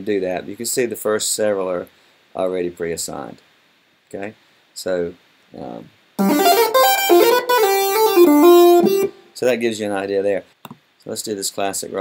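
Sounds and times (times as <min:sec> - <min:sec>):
buzzy synthesizer chords: 0:06.2 - 0:09.2.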